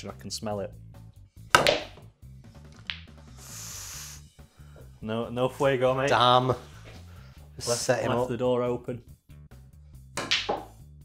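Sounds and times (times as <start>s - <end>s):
faint background music: 0.0s - 11.0s
cue striking snooker ball: 1.5s - 2.1s, 2.8s - 3.2s, 10.2s - 10.8s
snooker balls colliding: 1.5s - 2.1s, 2.8s - 3.2s, 10.2s - 10.8s.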